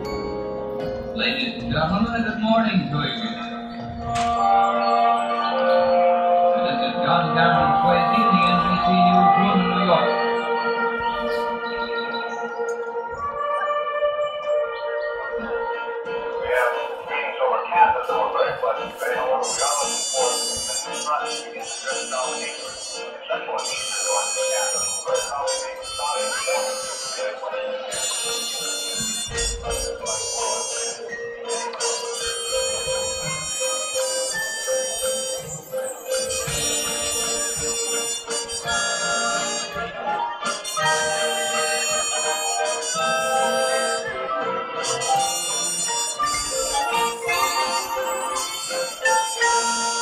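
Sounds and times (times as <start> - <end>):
bell-like tones: 0.0 - 16.9, 19.3 - 50.0
marching band brass and woodwinds: 1.2 - 50.0.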